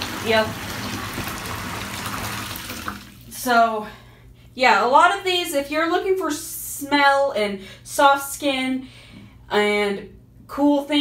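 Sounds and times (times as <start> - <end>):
tap water running into bathtub: 0.0 - 3.4.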